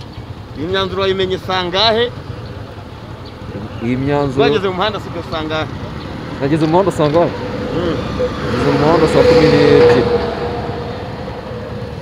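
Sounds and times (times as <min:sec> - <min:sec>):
motor vehicle passing: 0:00.0 - 0:12.0.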